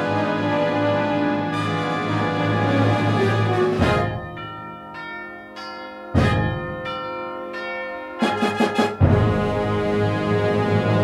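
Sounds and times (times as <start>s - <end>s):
wind band holding a chord: 0.0s - 11.0s
bells ringing: 1.1s - 10.4s.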